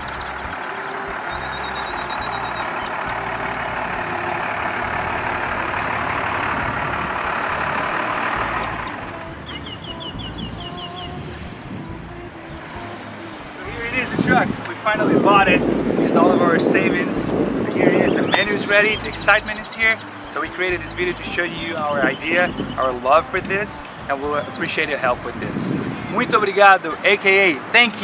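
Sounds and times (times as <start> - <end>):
background music: 0.0 - 28.0
truck engine and road noise: 0.0 - 28.0.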